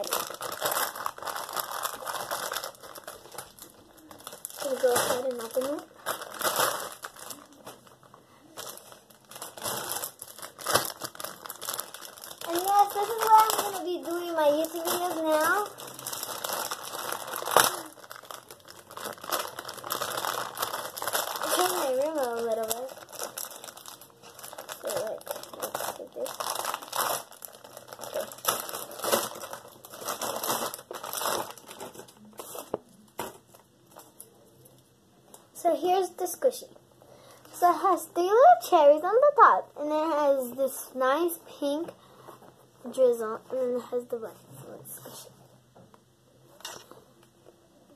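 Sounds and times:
plastic packaging crinkling: 0.0s - 34.3s.

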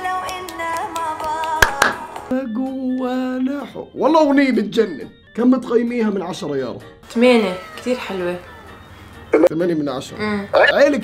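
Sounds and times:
person singing over a beat: 0.0s - 2.3s.

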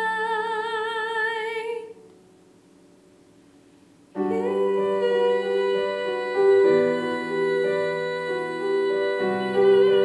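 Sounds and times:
woman singing a long note: 4.2s - 10.0s.

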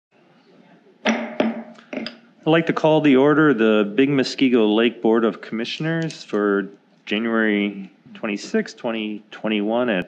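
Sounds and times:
sharp ringing knocks: 1.1s - 2.2s.

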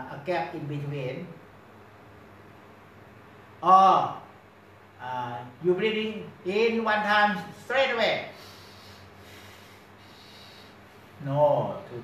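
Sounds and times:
steady low hum: 0.0s - 12.0s
man breathing in through nose: 8.4s - 11.2s.

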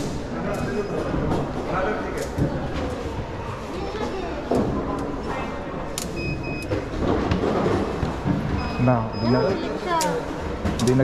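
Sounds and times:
busy hall background noise: 0.0s - 11.0s
card reader beeps: 6.0s - 6.8s, 8.6s - 10.1s.

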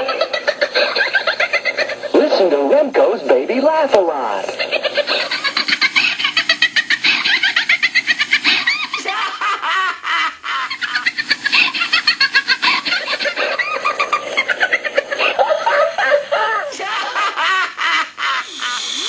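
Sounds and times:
toy baby laughing: 4.8s - 19.0s.

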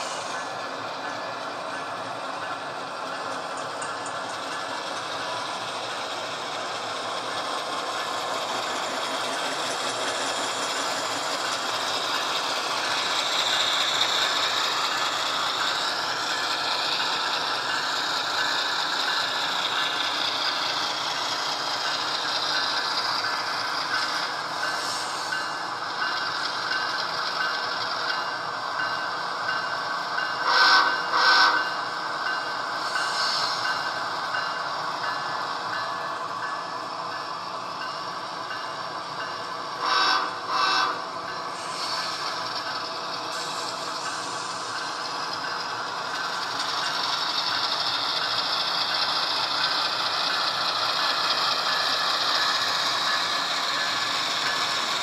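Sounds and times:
model train motors whirring: 0.0s - 55.0s
loud tonal horn blasts: 30.4s - 31.6s, 39.8s - 41.0s.

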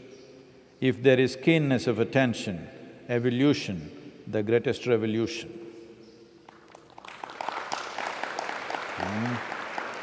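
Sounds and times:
audience applause: 6.6s - 10.0s.

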